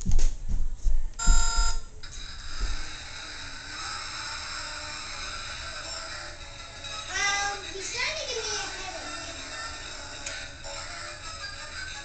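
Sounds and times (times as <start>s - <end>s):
electronic hum with high tones: 1.2s - 6.3s.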